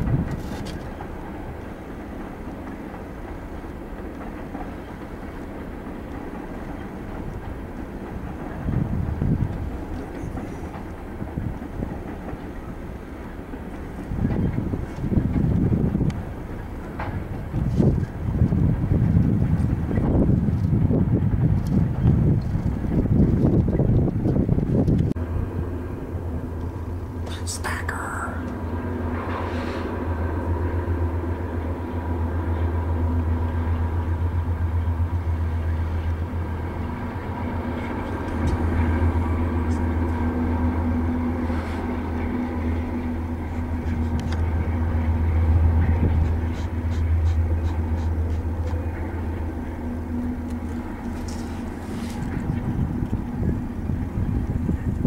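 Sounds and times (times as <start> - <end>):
train wheels clicking over rails: 0.0 - 25.2
diesel locomotive engines droning: 0.0 - 55.0.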